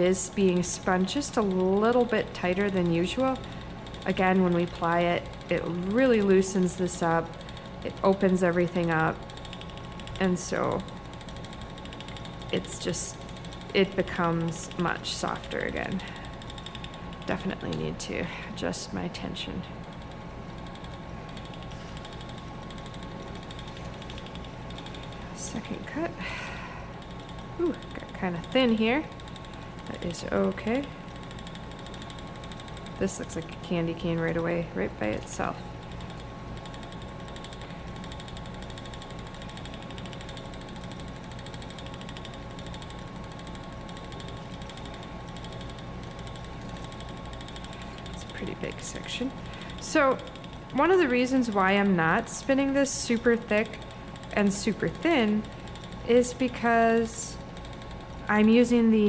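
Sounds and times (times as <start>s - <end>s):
spinning wheel whirring and ticking: 0.0s - 59.0s.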